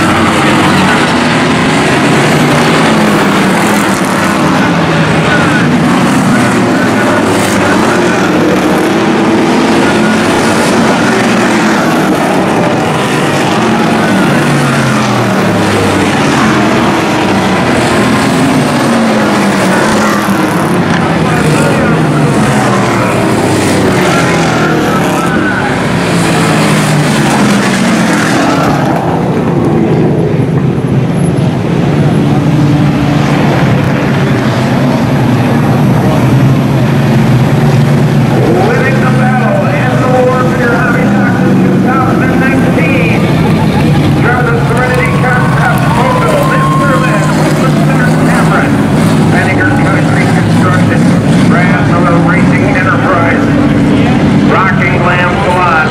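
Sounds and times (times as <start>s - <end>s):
race car engines passing: 0.0s - 55.9s.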